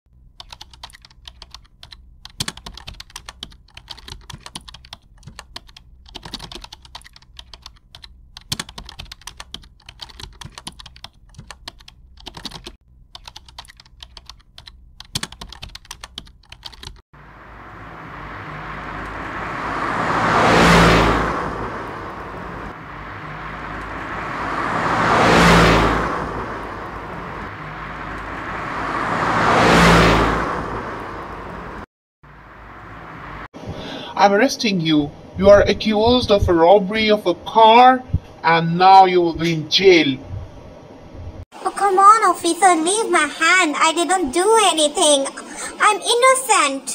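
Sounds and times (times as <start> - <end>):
car engine and road noise: 0.1 - 38.5, 39.3 - 46.9.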